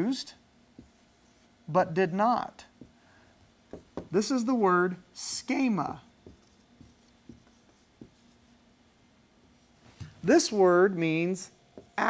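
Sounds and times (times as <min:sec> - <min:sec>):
marker writing on whiteboard: 0:00.8 - 0:01.5, 0:03.7 - 0:04.4, 0:05.5 - 0:08.6, 0:11.7 - 0:12.0.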